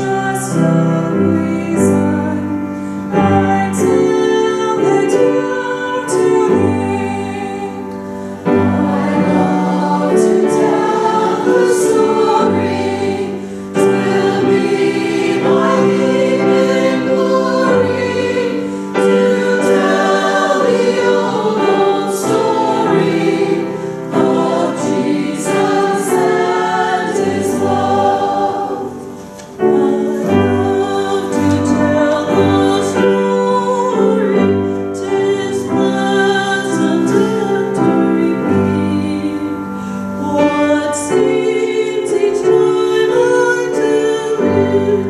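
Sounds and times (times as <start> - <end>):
choir singing: 0.0 - 45.0.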